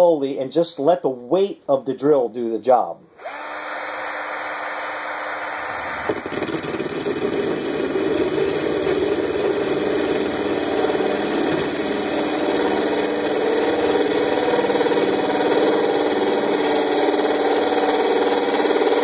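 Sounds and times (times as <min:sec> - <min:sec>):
power drill grinding into glass: 0:03.2 - 0:19.0.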